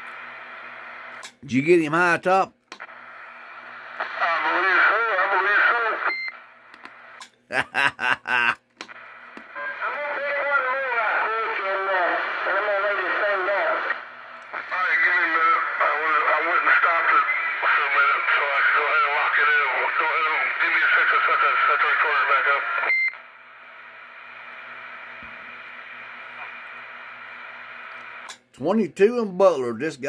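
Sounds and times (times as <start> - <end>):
radio crackles: 0.0 - 28.5
radio speech: 0.9 - 6.2, 6.9 - 23.0.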